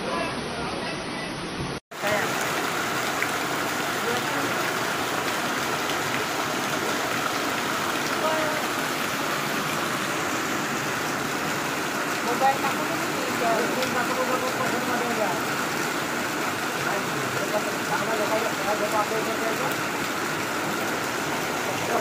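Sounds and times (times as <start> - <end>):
floodwater rushing: 0.0 - 22.0
heavy rain: 0.0 - 22.0.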